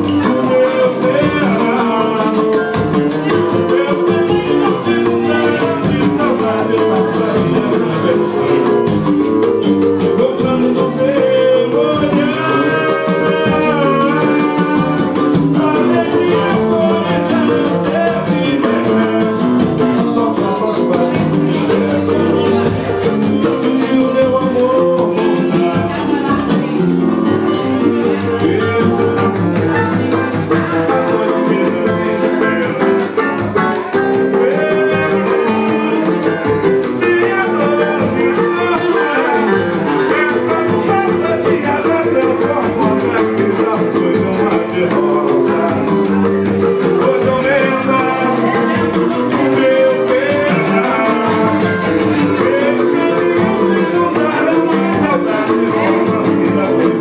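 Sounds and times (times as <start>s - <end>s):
hand drums: 0.0s - 57.0s
men singing together: 0.0s - 57.0s
percussion: 0.0s - 57.0s
strummed guitars: 0.0s - 57.0s.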